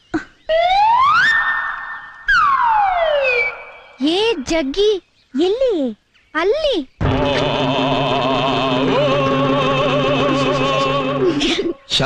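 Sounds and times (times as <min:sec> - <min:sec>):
sliding whistling tone: 0:00.7 - 0:04.0.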